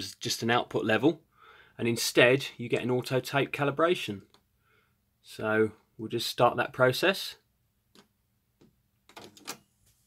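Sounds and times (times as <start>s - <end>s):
cassette mechanism clicks and clunks: 9.1s - 9.6s.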